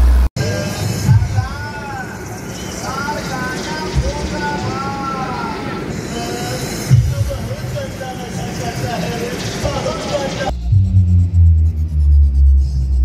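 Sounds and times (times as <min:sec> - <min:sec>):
deep pulsing bass music: 0:00.0 - 0:00.3, 0:10.5 - 0:13.0.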